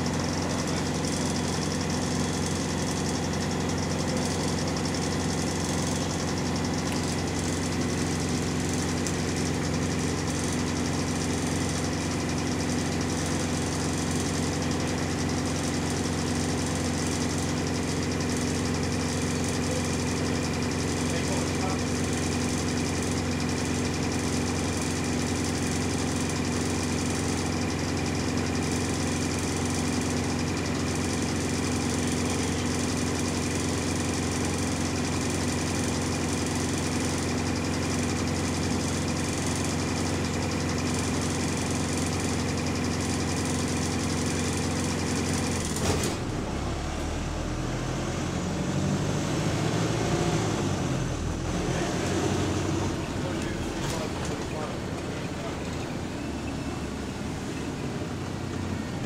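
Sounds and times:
bus diesel engine idling: 0.0 - 59.0
bus body rattling: 42.2 - 46.6, 52.7 - 56.2.

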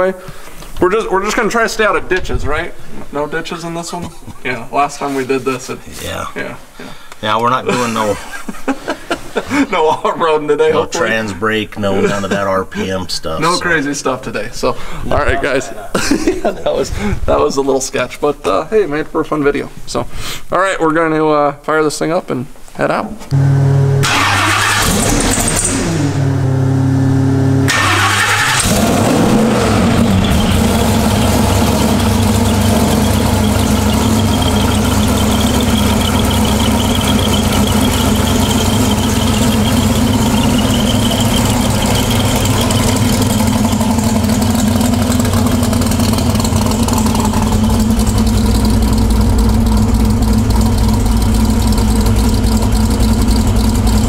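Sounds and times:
car engine starting and idling: 23.3 - 54.0.

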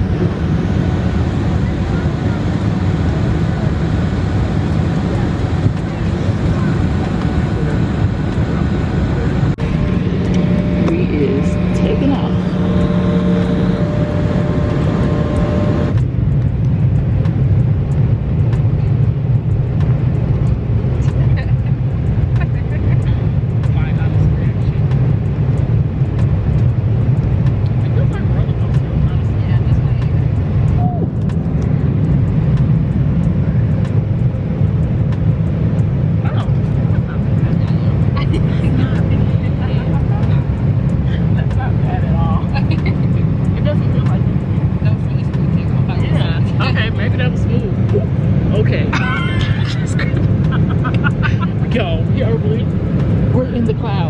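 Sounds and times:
faint passenger voices: 0.0 - 16.0, 27.7 - 31.3, 36.2 - 54.0
engine and air rumble: 0.0 - 54.0.

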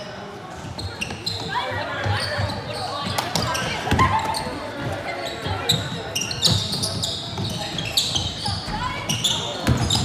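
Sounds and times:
sneaker squeaks: 0.0 - 10.0.

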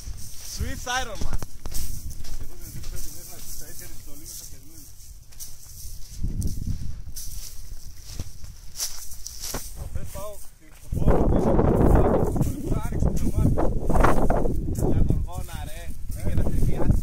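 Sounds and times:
footsteps crunching on sand: 0.0 - 17.0
wind rumbling on microphone: 0.0 - 17.0.

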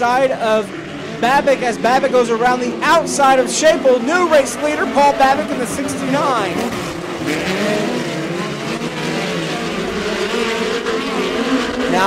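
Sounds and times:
race car engines at high revs: 0.0 - 12.0.

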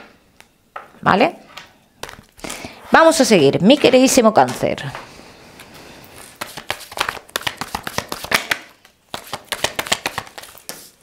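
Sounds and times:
cards being shuffled: 6.2 - 11.0.

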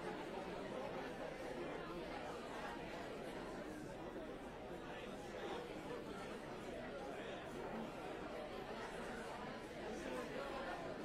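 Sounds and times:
indistinct chatter of many people: 0.0 - 11.0.

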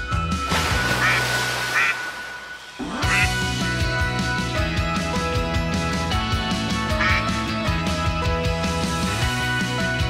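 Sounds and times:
background music: 0.0 - 10.0
duck quacks: 1.0 - 2.0, 3.0 - 3.4, 6.9 - 7.4.

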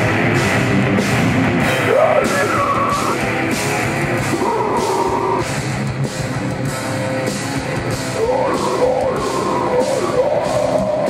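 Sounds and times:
heavy metal band playing live: 0.0 - 11.0.

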